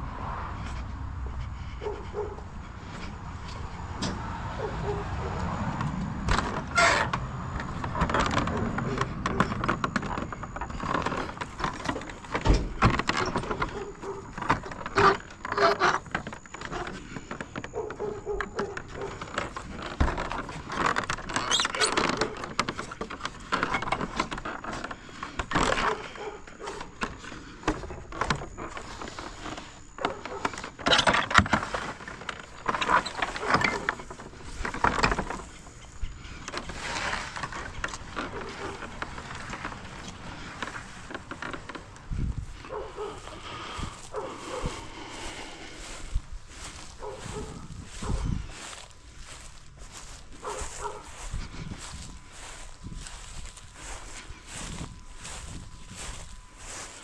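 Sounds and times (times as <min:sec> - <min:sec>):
wooden gate rattling: 0:01.6 - 0:55.4.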